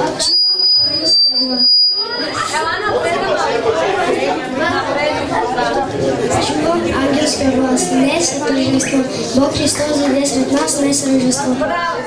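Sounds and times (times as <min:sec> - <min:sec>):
children and adults chattering: 0:00.0 - 0:12.0
thin high steady tone: 0:00.1 - 0:02.6.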